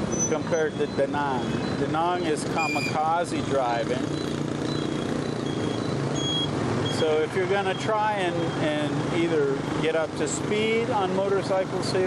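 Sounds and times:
motorbike engine: 0:00.0 - 0:11.8
city traffic: 0:00.0 - 0:12.0
short high-pitched beeps: 0:00.1 - 0:03.1, 0:04.0 - 0:07.1.

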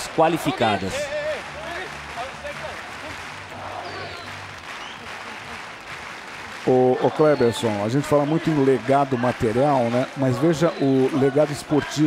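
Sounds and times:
stadium crowd applauding: 0:00.0 - 0:12.0.

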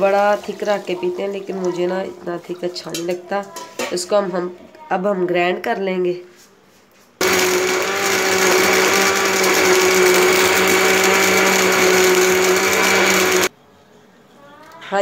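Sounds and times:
electric blender running: 0:07.2 - 0:13.5.

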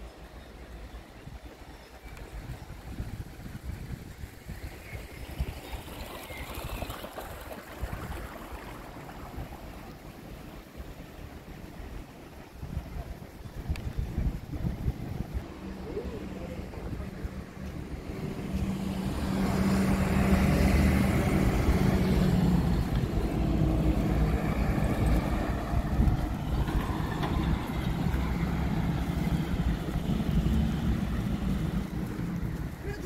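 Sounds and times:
vehicles passing: 0:02.3 - 0:33.0.

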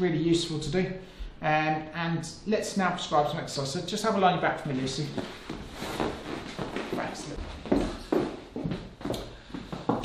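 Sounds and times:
person rustling on padded couch: 0:05.2 - 0:07.8.

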